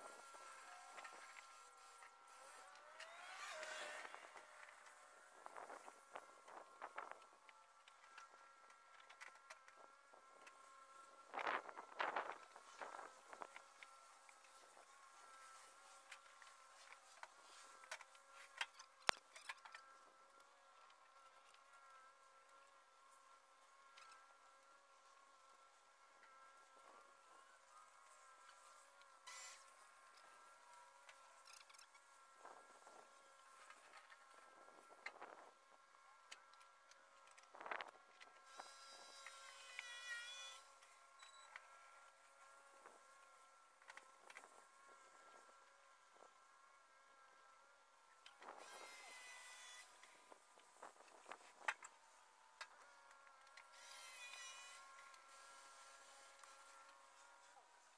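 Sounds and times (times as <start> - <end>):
faint insect buzzing: 48.4 - 57.9.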